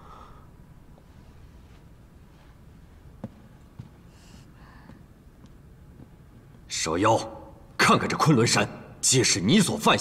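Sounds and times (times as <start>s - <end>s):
soft rustle: 0.9s - 4.4s.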